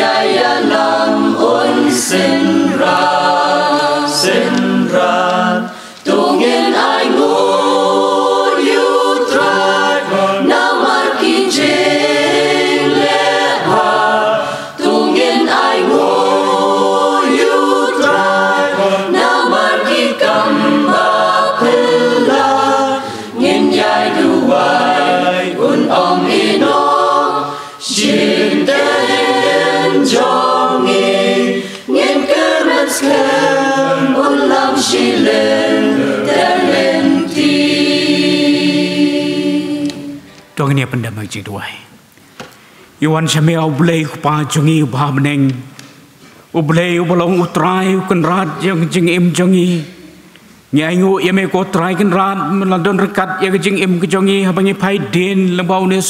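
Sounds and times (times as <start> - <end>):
choir singing a hymn a cappella: 0.0 - 40.6.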